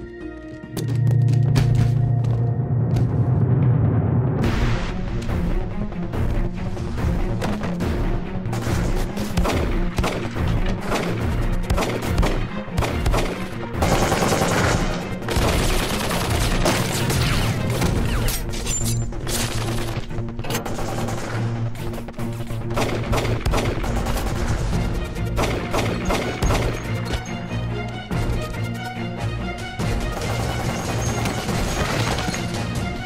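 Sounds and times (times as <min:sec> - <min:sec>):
dramatic music with low drone: 0:00.0 - 0:33.0
gunshots in rapid bursts: 0:07.4 - 0:18.4, 0:19.2 - 0:27.2, 0:29.8 - 0:32.8.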